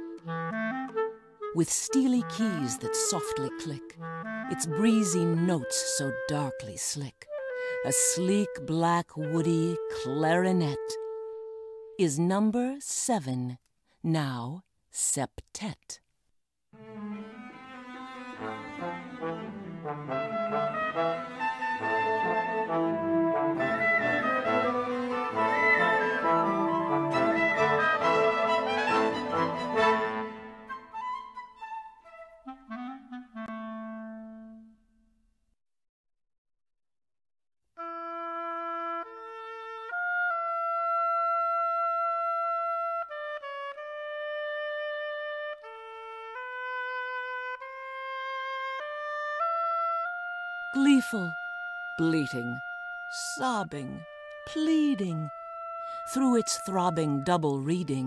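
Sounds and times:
woodwind solo melody: 0.0 - 12.0, 18.4 - 34.9, 37.8 - 58.0
chamber ensemble playing: 16.9 - 33.7, 53.2 - 58.0.

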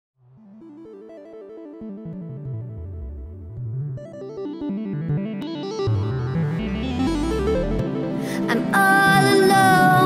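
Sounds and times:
keyboard notes: 0.4 - 10.0
bass line: 2.0 - 8.2.

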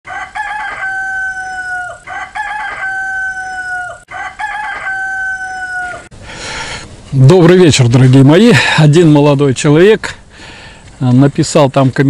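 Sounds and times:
rooster crowing: 0.1 - 6.1.

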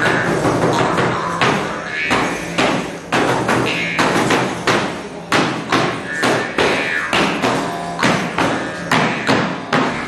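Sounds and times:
frame drum beaten with a stick: 0.0 - 10.0.

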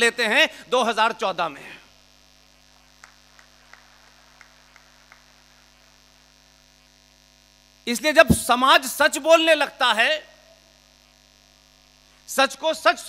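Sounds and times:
faint electrical mains hum: 0.0 - 13.0.

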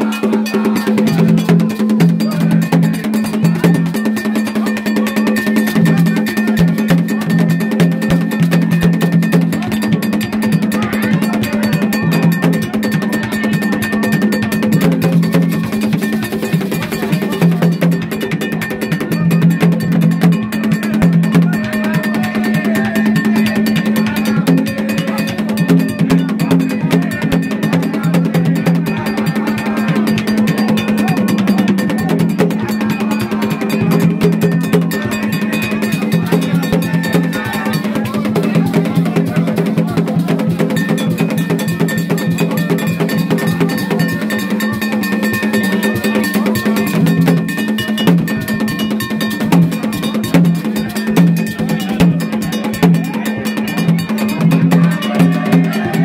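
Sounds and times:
metal percussion: 0.0 - 56.0.

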